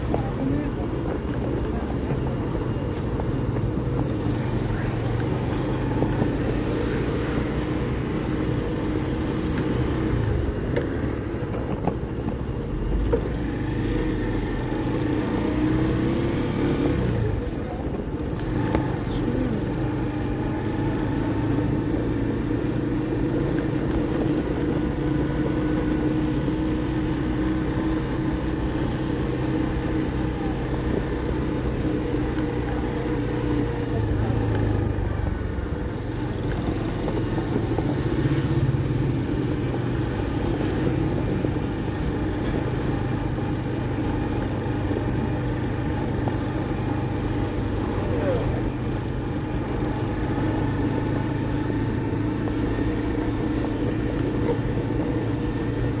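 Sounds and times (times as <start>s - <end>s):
motorcycle engine running: 0.0s - 56.0s
nearby cars: 0.0s - 56.0s
road noise: 0.0s - 56.0s.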